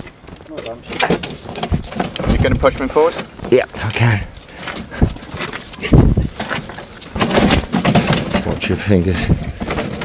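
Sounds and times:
scuffling and scraping: 0:00.0 - 0:10.0.

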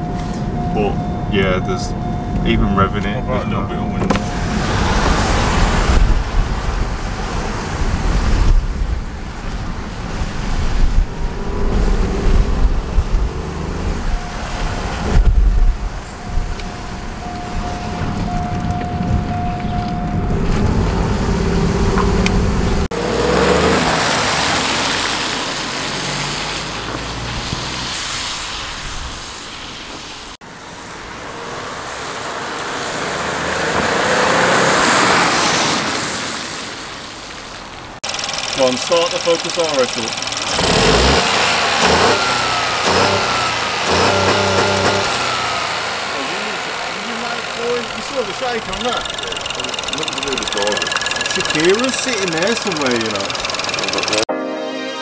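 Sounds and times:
car engine rumble revving: 0:00.0 - 0:54.3
tyres hissing on wet road: 0:23.0 - 0:37.9, 0:40.6 - 0:49.0.

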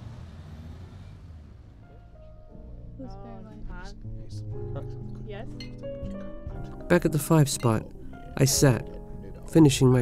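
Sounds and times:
low rumbling city ambience: 0:00.0 - 0:04.2.

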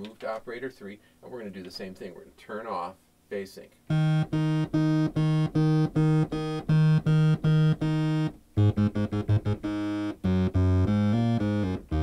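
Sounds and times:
bright synthesizer sawtooth notes: 0:03.9 - 0:12.0.

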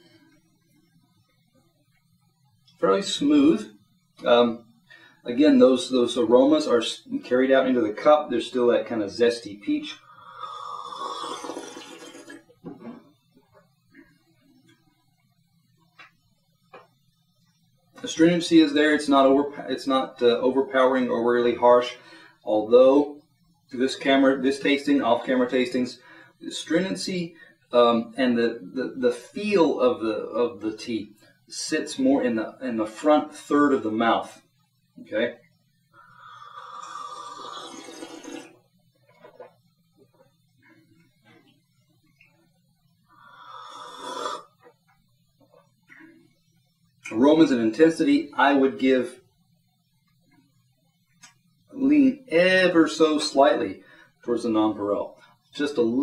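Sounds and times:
person slurping tea: 0:10.4 - 0:12.4, 0:36.5 - 0:38.6, 0:43.6 - 0:44.6.

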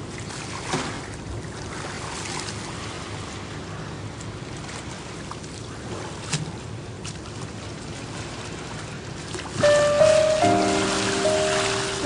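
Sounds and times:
splash: 0:00.0 - 0:03.3, 0:04.6 - 0:12.0
water lapping: 0:00.0 - 0:12.0.

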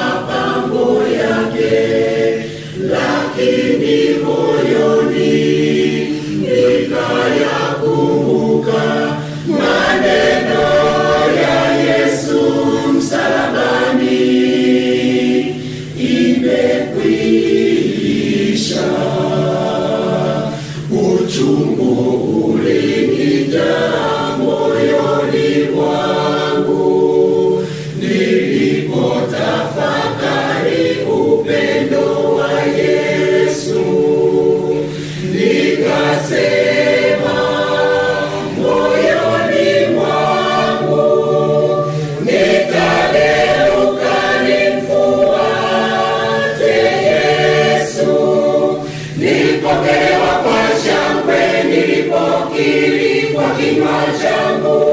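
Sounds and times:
mixed choir singing a hymn: 0:00.0 - 0:54.9.

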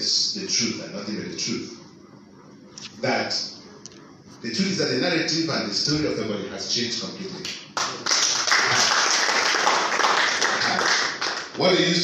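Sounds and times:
audience clapping: 0:07.4 - 0:11.6.

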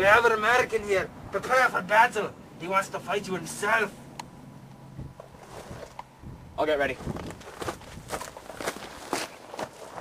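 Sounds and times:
footsteps on outdoor ground: 0:05.2 - 0:06.1, 0:06.8 - 0:10.0.

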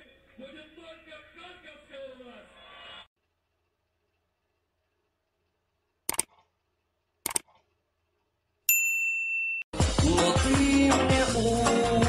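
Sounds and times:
mouse clicks: 0:06.1 - 0:06.5, 0:07.2 - 0:07.6
bright bell-like ding: 0:08.7 - 0:09.7
music: 0:09.8 - 0:12.0.

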